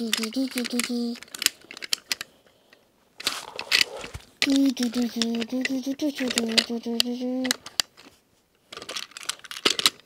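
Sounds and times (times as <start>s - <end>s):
toy train cars knocking: 3.2s - 7.8s.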